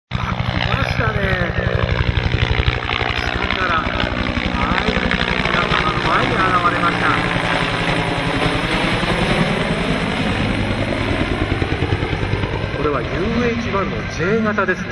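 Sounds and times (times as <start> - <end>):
helicopter rotor beating: 0.1 - 14.9.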